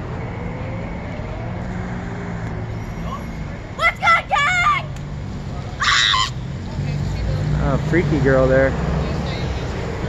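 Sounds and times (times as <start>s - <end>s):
girl screaming: 3.8s - 4.9s, 5.8s - 6.4s.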